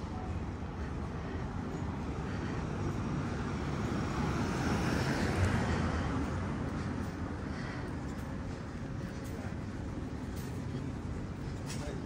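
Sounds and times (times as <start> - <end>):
low city rumble: 0.0 - 12.0.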